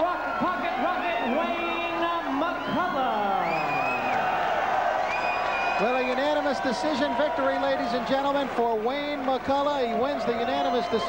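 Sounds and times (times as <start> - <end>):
announcer's amplified voice: 0.0 - 4.0, 5.8 - 11.0
crowd noise: 0.0 - 11.0.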